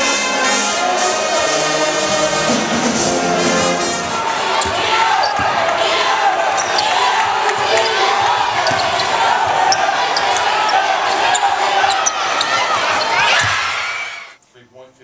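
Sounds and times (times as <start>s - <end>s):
crowd voices: 0.0s - 14.4s
sneaker squeaks: 4.5s - 5.7s, 6.4s - 13.8s
basketball bouncing on wooden floor: 6.6s - 10.4s.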